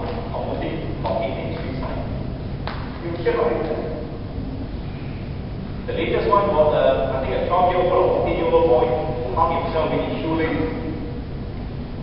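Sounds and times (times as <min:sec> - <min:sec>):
man speaking in a hall: 0:00.0 - 0:12.0.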